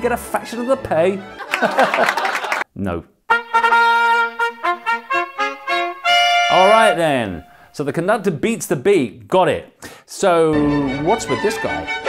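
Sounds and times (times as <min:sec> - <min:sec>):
brass fanfare: 0:03.3 - 0:07.8.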